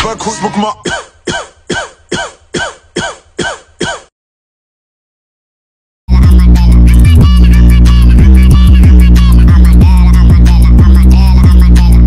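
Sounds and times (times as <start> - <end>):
person coughing: 0.7 - 4.1.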